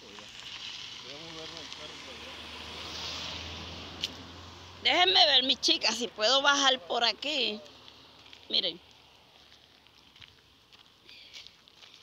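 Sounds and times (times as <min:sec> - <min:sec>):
flip-flop footsteps on gravel: 0:07.2 - 0:12.0.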